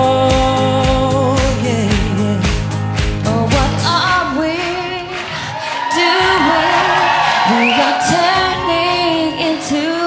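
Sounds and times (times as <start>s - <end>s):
band accompaniment: 0.0s - 4.2s
woman singing a pop ballad: 0.0s - 10.0s.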